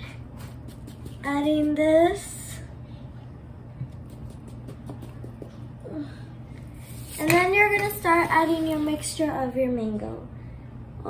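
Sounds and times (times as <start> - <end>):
electric fan hum: 0.0 - 11.0.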